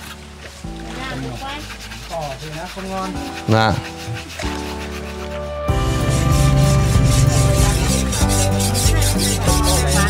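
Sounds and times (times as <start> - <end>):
indistinct voices talking: 6.1 - 10.0.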